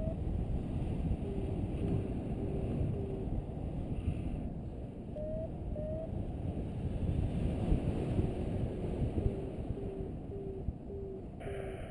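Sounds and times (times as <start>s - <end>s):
short rising beeps: 0.0s - 0.2s, 5.2s - 6.1s, 9.8s - 11.9s
wind buffeting microphone: 0.0s - 11.4s.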